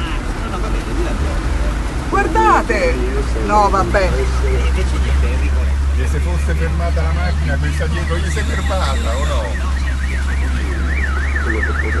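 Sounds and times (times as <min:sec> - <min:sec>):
low vehicle engine drone: 0:00.0 - 0:12.0
electronic alarm siren wailing: 0:08.3 - 0:12.0.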